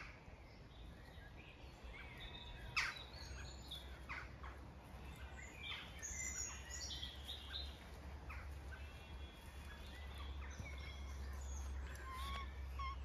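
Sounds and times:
birds chirping and whistling: 0.0s - 4.3s, 4.9s - 13.0s.

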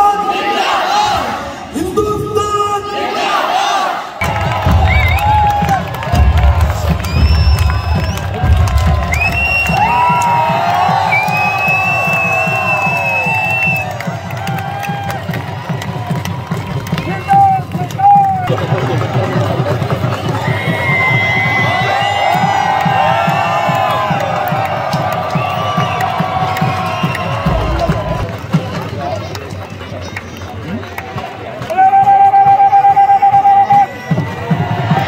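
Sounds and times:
crowd cheering and chanting: 0.0s - 35.0s.

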